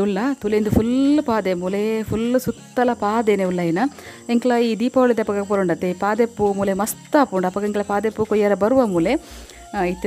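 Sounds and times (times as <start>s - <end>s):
insects buzzing: 0.0s - 10.0s
woman talking: 0.0s - 10.0s.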